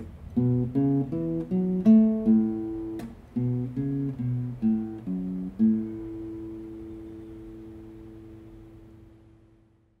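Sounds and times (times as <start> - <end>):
acoustic guitar chord ringing: 0.0 - 9.9.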